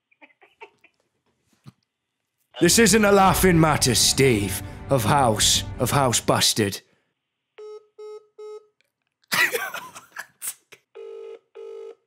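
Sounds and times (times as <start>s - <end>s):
man laughing loudly: 9.3s - 10.8s.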